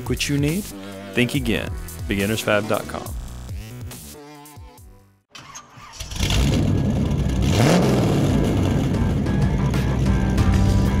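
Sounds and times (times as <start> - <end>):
music: 0.0 - 5.3, 7.8 - 11.0
vehicle engine starting and revving: 5.4 - 11.0.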